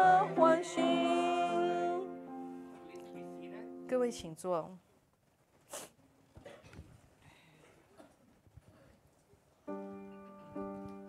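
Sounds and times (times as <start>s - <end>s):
short breathy hiss: 5.6s - 6.0s.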